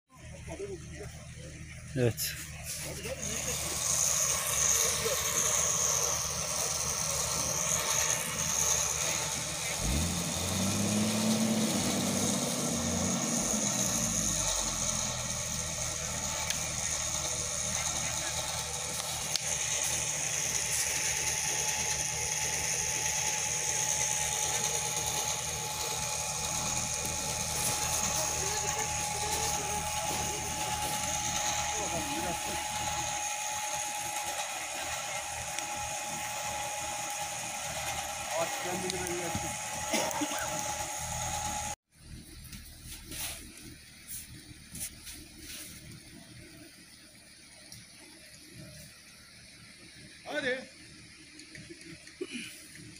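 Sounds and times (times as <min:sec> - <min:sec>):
deep drone: 0:00.1 - 0:41.8
winch whining under load: 0:00.2 - 0:42.3.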